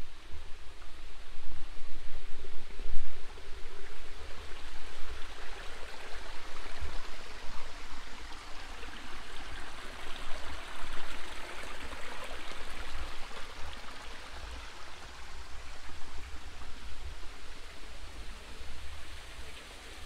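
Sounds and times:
stream trickling over rocks: 0.0s - 20.0s.

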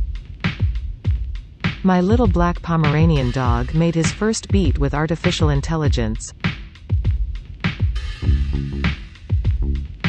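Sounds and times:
deep kick drum: 0.0s - 10.0s
person speaking: 1.9s - 6.3s.

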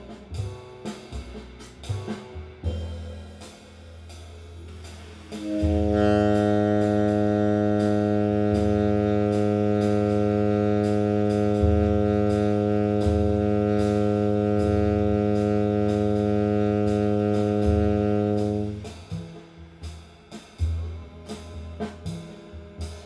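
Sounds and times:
bass line: 0.0s - 23.0s
cymbal pulse: 2.6s - 23.0s
saxophone holding low tone: 5.2s - 19.8s.

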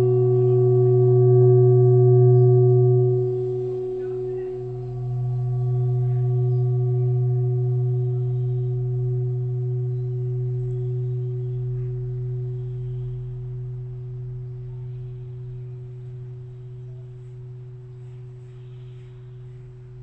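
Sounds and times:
singing bowl ringing: 0.0s - 20.0s.

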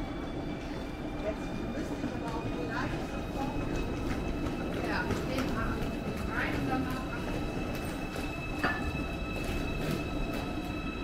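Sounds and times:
high train whine: 0.0s - 11.0s
train rumbling past: 0.0s - 11.0s.

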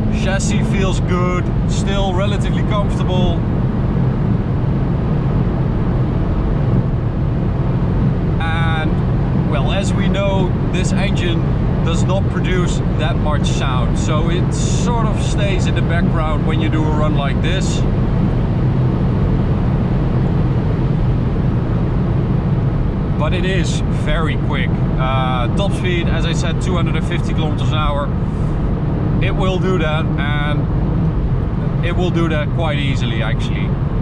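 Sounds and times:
car engine low drone: 0.0s - 34.0s
road and wind noise: 0.0s - 34.0s.

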